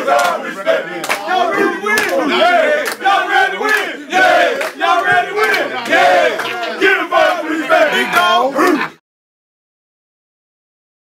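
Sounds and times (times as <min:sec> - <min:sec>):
men shouting and chanting: 0:00.0 - 0:09.0.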